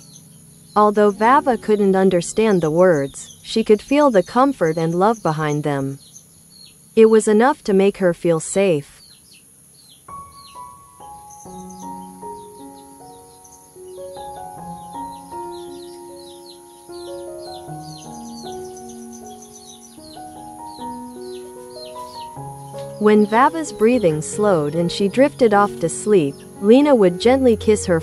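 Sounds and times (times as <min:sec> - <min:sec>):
soft background music: 0:00.0 - 0:05.8, 0:10.1 - 0:28.0.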